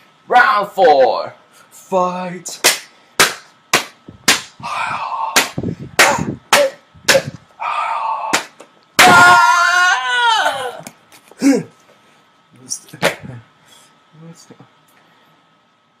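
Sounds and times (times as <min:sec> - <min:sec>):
sharp smacks or hits: 0:02.6 - 0:04.6, 0:05.3 - 0:07.4, 0:08.3 - 0:09.2
loud drawn-out cry: 0:04.6 - 0:06.4, 0:07.6 - 0:10.9.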